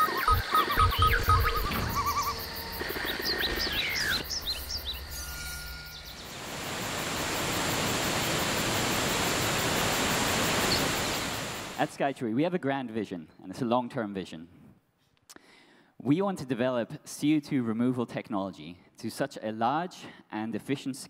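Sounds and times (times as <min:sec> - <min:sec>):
chirping bird-like calls and beeps: 0:00.0 - 0:06.4
waterfall rushing: 0:05.7 - 0:11.8.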